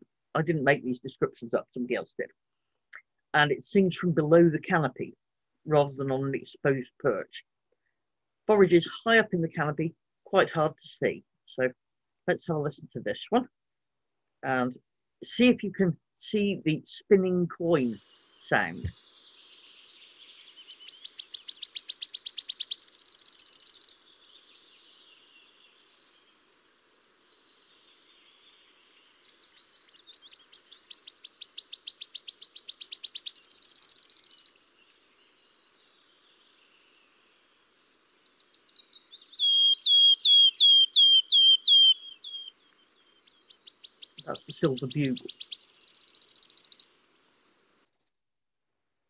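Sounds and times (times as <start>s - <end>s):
bird trilling: 20.4s - 25.3s, 29.0s - 35.0s, 39.2s - 48.2s.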